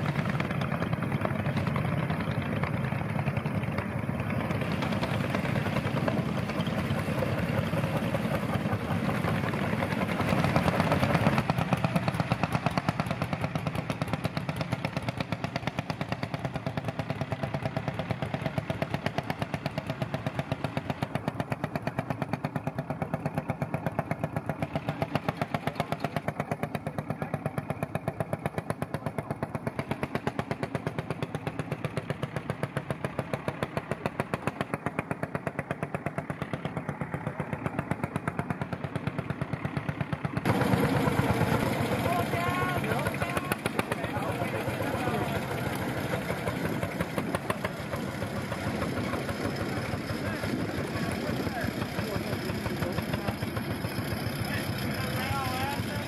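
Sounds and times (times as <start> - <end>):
small engine running: 0.0 - 56.0.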